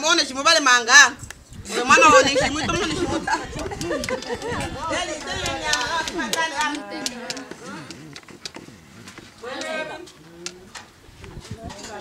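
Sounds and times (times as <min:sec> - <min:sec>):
voices: 0:00.0 - 0:12.0
dove cooing: 0:07.3 - 0:10.8.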